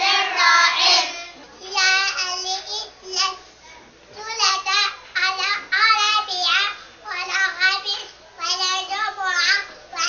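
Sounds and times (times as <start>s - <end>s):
girl singing: 0.0s - 3.3s.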